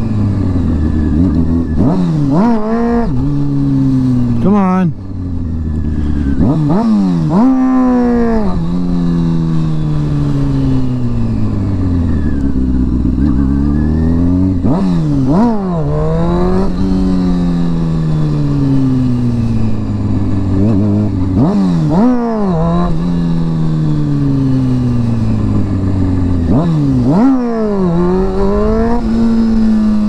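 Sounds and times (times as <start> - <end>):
motorcycle engine revving: 0.0 - 30.0.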